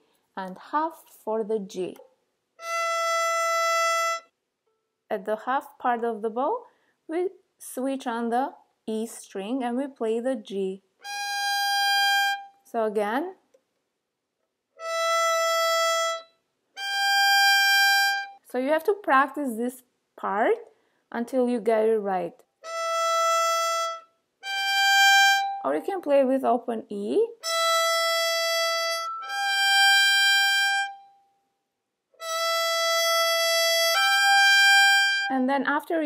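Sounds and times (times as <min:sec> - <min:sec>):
violin bowed notes: 0:02.6 - 0:04.3, 0:11.0 - 0:12.6, 0:14.8 - 0:18.4, 0:22.6 - 0:26.3, 0:27.3 - 0:31.2, 0:32.2 - 0:35.5.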